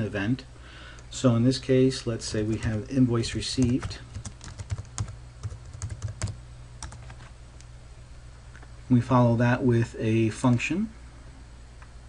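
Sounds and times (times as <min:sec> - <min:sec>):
computer keyboard typing: 0:03.6 - 0:07.2.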